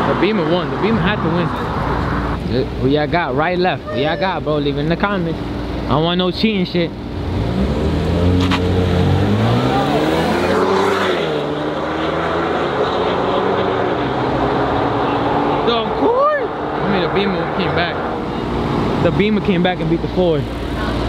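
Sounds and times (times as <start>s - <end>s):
car engines revving: 0.0s - 21.0s.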